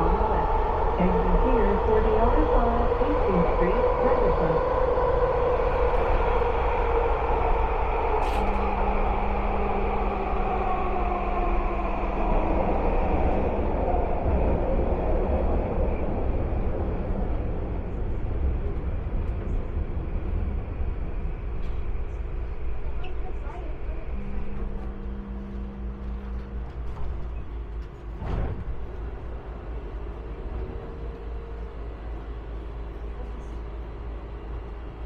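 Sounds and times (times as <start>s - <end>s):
train rumbling: 0.0s - 35.0s.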